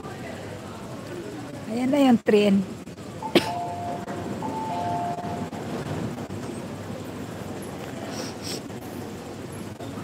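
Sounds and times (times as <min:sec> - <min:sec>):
low rumble of train: 0:00.0 - 0:10.0
two-tone electronic door chime: 0:03.5 - 0:05.6.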